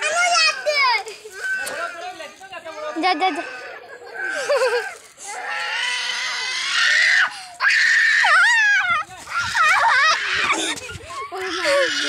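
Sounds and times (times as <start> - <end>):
child screaming: 0.0 - 1.8, 6.3 - 12.0.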